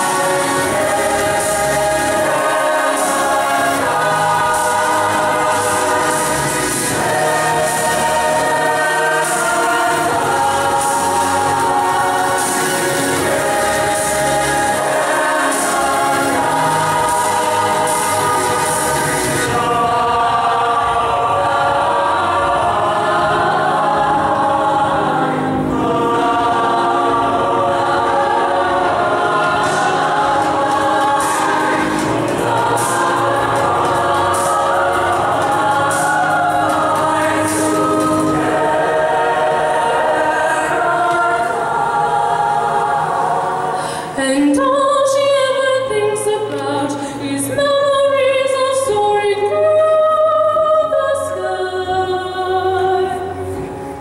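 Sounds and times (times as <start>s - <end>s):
youth choir singing: 0.0s - 54.0s.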